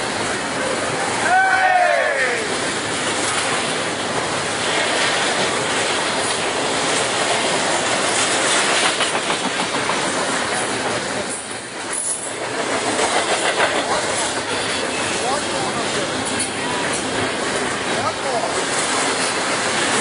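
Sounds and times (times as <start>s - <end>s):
freight train wheels rushing on rail: 0.0s - 20.0s
wheels clacking over rail joints: 2.5s - 20.0s.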